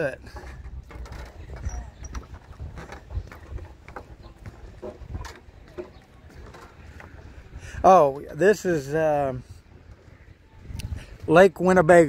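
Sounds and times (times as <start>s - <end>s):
wind rumbling on microphone: 0.0s - 12.0s
footsteps on wooden planks: 0.2s - 7.6s.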